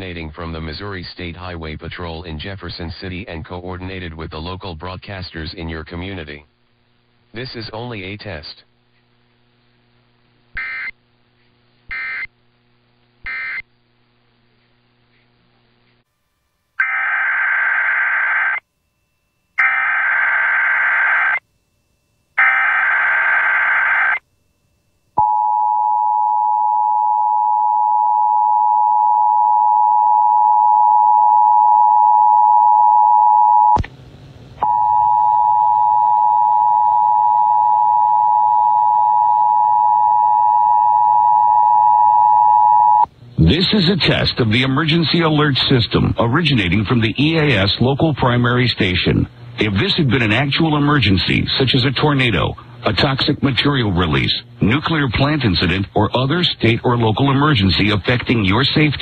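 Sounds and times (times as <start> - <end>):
person announcing: 43.4 - 59.0.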